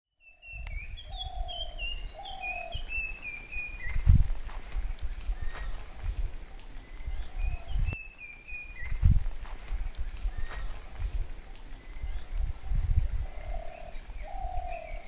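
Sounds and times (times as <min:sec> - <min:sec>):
birds whistling calls: 0:00.2 - 0:15.0
low rumble: 0:08.9 - 0:14.1.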